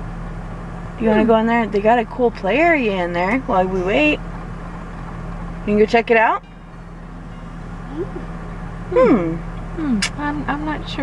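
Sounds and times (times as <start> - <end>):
car engine humming: 0.0 - 11.0.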